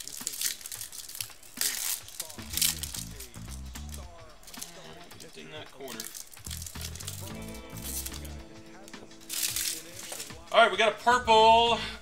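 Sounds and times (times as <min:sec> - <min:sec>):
foil wrapper crinkling: 0:00.0 - 0:10.6
background music: 0:00.0 - 0:12.0.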